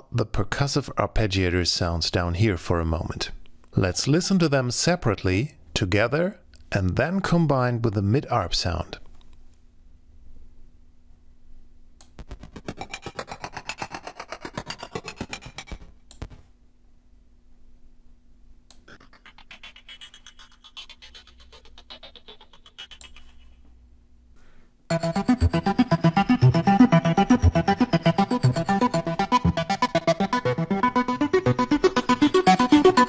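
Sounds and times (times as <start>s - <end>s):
arpeggiated synthesizer ticking pulses: 24.9s - 33.0s.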